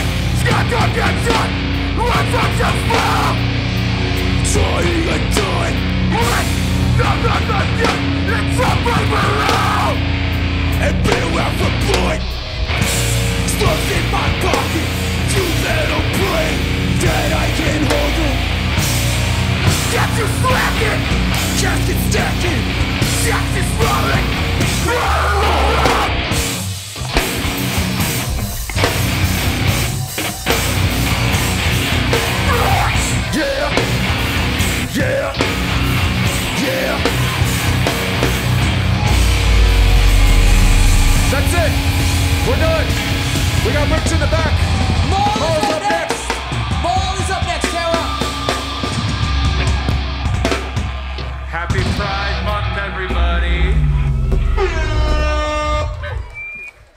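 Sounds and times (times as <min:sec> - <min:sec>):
heavy band playing a riff: 0:00.0 - 0:56.9
pitched sound sliding upward: 0:39.0 - 0:43.2.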